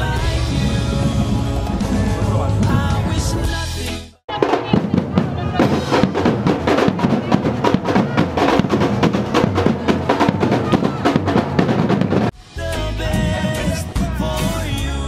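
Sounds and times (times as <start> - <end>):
frame drums: 0.0 - 15.0
street drums playing fast rhythm: 0.0 - 15.0.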